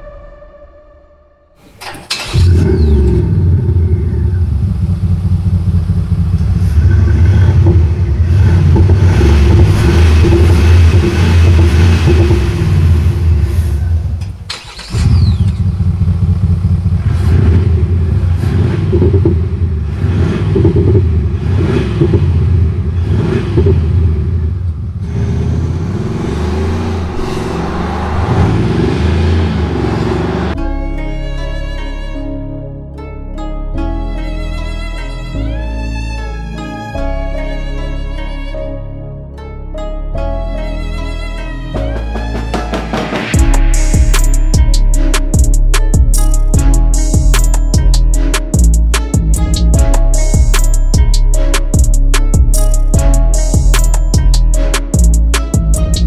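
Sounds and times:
car engine idling and revving: 1.6s - 30.8s, 41.7s - 56.0s.

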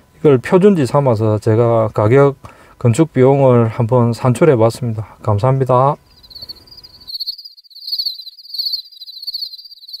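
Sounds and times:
faint low background hiss: 0.0s - 7.1s
insect-like trilling chirp: 6.1s - 10.0s.

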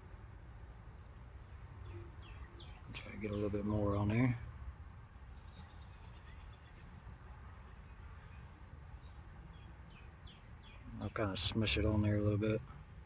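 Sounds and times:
low outdoor rumble: 0.0s - 13.0s
faint bird chirps: 1.5s - 13.0s.

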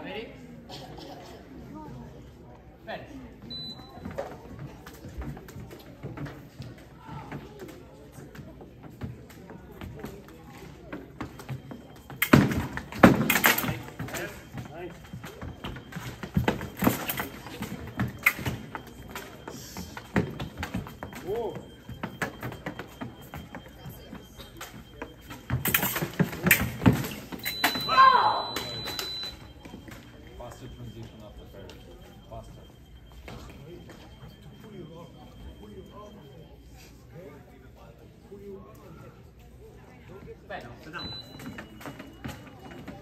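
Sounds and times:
fencer shouting: 27.9s - 28.8s.

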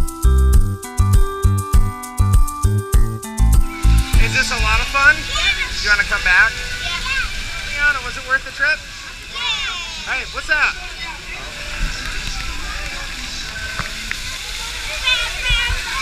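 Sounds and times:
background music with beat: 0.0s - 5.2s
children's voices and squeals: 4.0s - 16.0s.

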